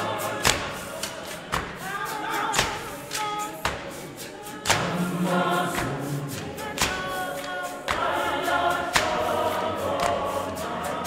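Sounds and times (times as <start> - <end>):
church choir singing: 0.0 - 11.0.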